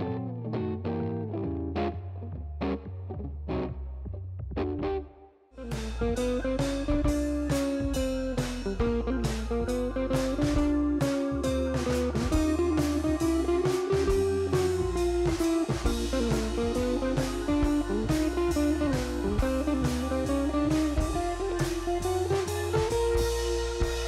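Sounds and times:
guitar-led instrumental music: 0.0 - 24.0.

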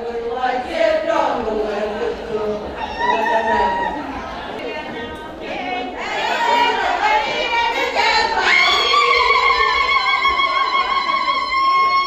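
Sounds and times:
women singing: 0.0 - 12.0.

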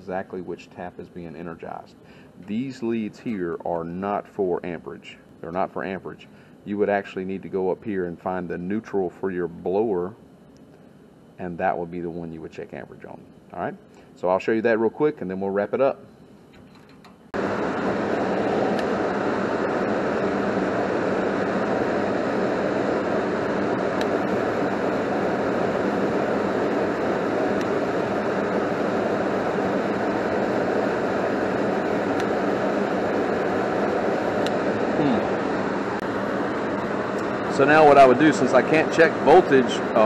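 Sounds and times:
furnace blower air rush: 0.0 - 16.6, 17.2 - 40.0
low motor hum: 17.1 - 40.0.

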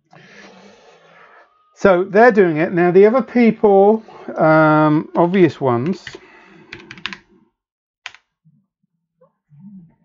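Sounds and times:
computer keyboard typing: 5.8 - 7.2.

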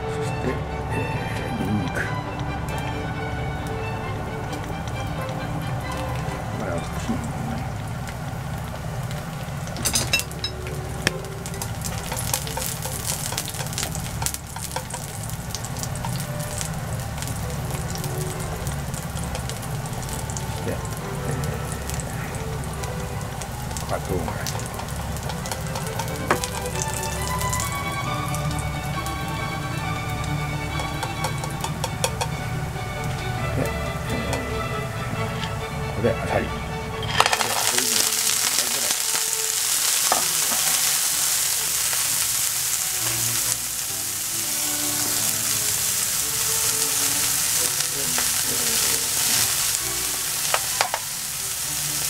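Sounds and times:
garlic sizzling in oil: 2.2 - 35.9, 37.1 - 52.0.

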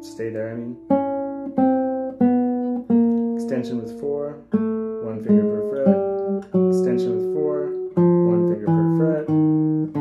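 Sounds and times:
classical guitar plucked notes: 0.0 - 10.0.

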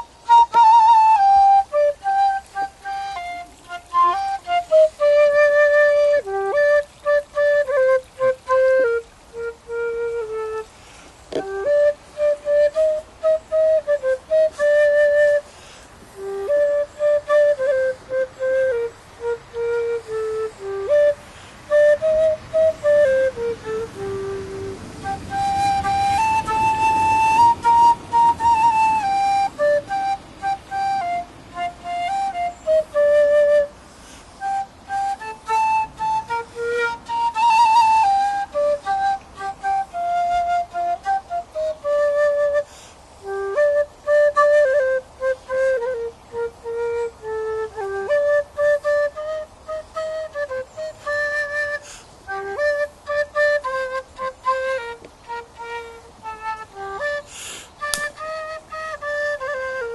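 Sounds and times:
end-blown whistle melody: 0.0 - 10.7, 11.3 - 15.5, 16.1 - 59.9.

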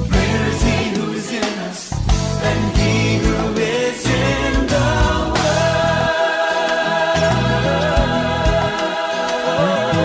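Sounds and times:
bass line: 0.0 - 1.0, 2.0 - 6.2, 7.2 - 8.8
choir singing held notes: 0.0 - 10.0.

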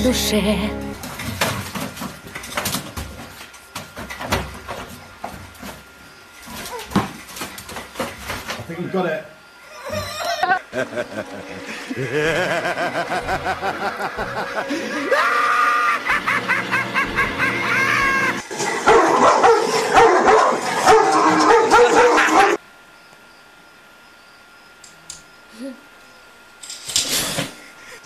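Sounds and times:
people laughing: 10.4 - 18.4.

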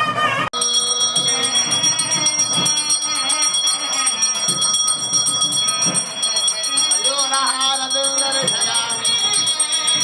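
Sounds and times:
hand bell ringing rapidly: 0.6 - 10.0.

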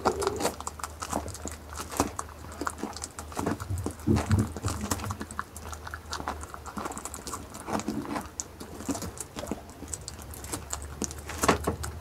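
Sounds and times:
goat chewing fruit: 0.0 - 12.0.

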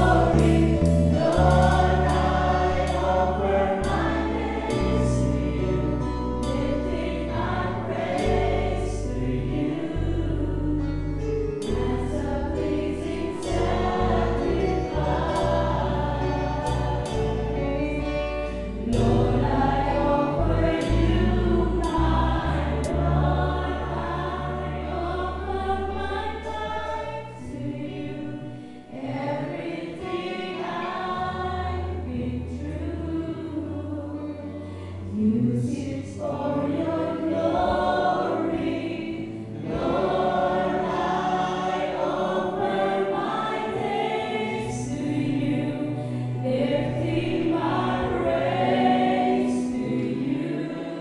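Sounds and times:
long held bass notes: 0.0 - 28.5
church band playing: 0.0 - 51.0
women singing together: 0.0 - 51.0.

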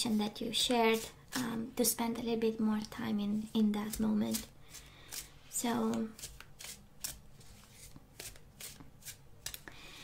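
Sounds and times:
cards being shuffled: 5.9 - 9.7.

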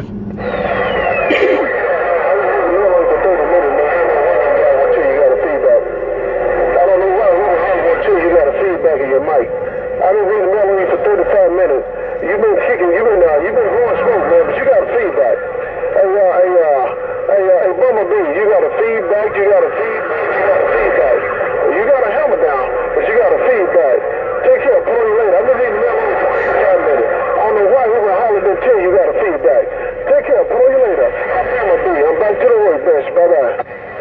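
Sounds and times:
garbled radio voices: 0.0 - 34.0
steady whistle: 0.3 - 1.8
whistle falling in pitch: 0.4 - 1.4.

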